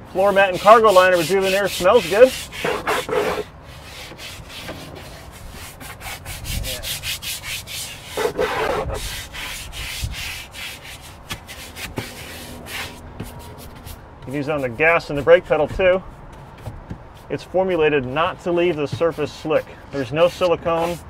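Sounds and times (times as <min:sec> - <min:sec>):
stiff brush scrubbing wet rubber: 0:00.1 - 0:21.0.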